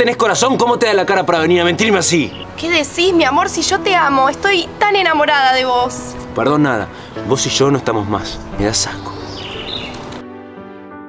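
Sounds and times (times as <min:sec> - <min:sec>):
outdoor background noise: 0:00.0 - 0:07.2
soft slow background music: 0:00.0 - 0:11.0.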